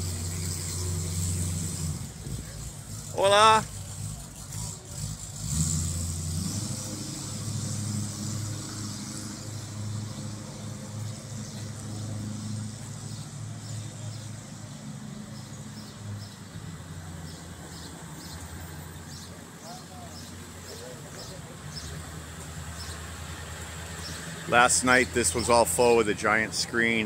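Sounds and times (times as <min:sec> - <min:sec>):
vehicle engine running: 0:00.0 - 0:27.0.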